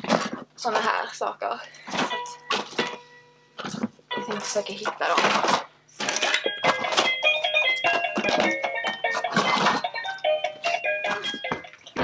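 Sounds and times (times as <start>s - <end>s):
plastic toys clattering: 0.0s - 1.0s, 1.8s - 3.0s, 3.6s - 12.0s
electronic toy beeping jingle: 6.3s - 11.9s.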